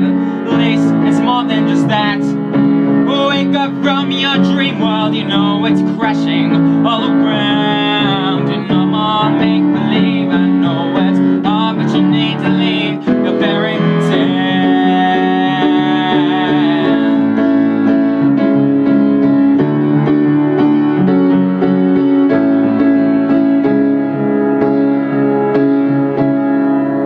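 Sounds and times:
piano playing: 0.0s - 27.0s.

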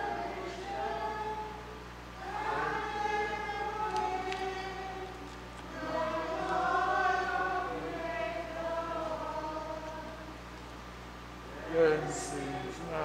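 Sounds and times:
congregation singing a hymn: 0.0s - 10.7s, 11.4s - 13.0s.

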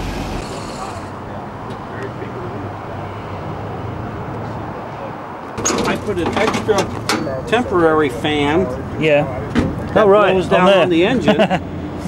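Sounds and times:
car engine idling: 0.0s - 4.4s
people talking: 0.4s - 2.7s, 4.8s - 11.6s.

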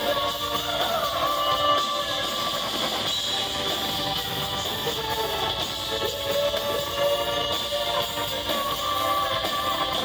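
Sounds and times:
live band guitar and keyboards: 0.0s - 10.0s
stage and room hiss: 0.0s - 10.0s.

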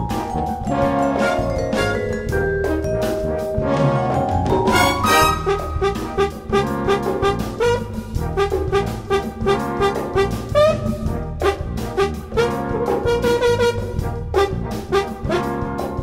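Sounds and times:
brass and drum band playing: 0.0s - 16.0s.

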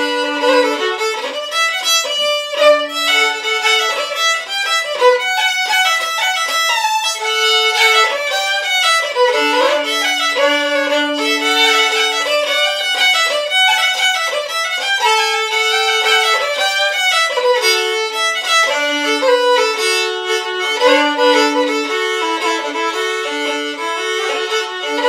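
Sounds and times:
solo fiddle playing: 0.0s - 25.0s.

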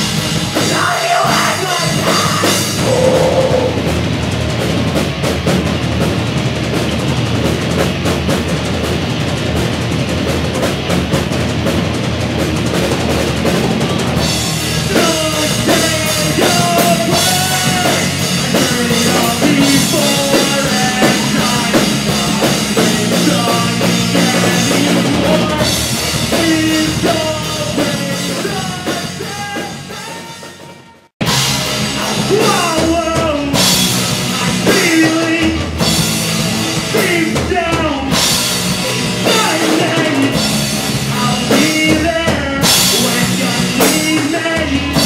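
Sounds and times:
pop-punk band playing: 0.0s - 45.0s.

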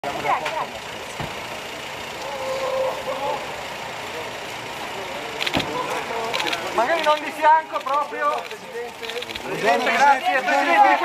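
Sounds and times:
car idling: 0.0s - 11.0s.

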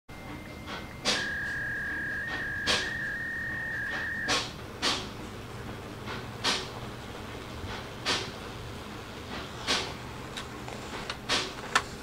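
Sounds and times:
fax machine connection tones: 0.2s - 4.4s.

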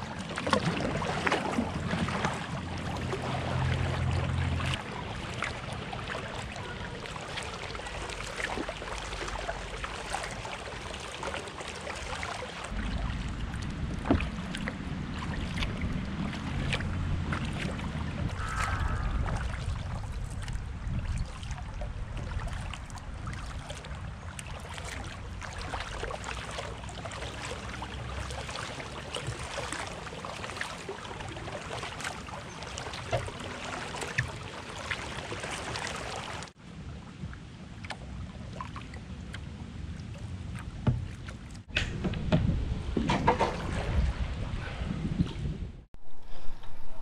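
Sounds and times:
paddle splashing water: 0.0s - 45.6s
water lapping at hull: 0.0s - 46.4s
wind on microphone: 12.7s - 24.3s, 41.7s - 47.0s.

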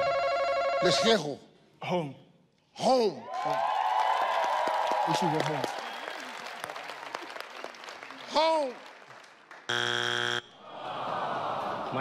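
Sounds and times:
audience applause: 3.3s - 9.7s.

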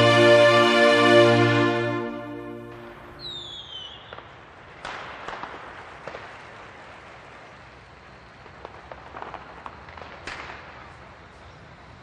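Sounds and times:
fireworks crackling fizz: 0.0s - 12.0s
fireworks sharp pops: 2.8s - 11.5s.

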